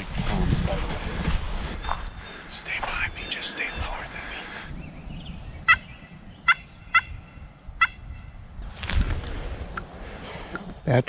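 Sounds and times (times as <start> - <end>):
turkey calls: 1.8 - 4.7, 5.6 - 8.4
rustling: 8.6 - 9.7.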